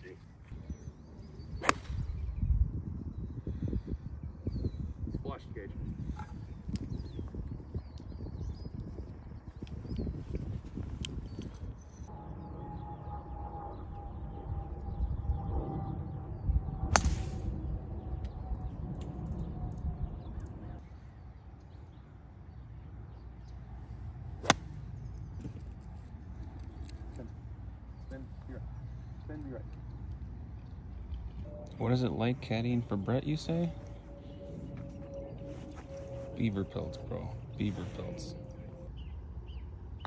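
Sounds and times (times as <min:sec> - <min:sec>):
wind rumble on microphone: 0:00.0 - 0:40.0
golf club striking ball: 0:24.4 - 0:24.8
faint steady whine: 0:25.8 - 0:40.0.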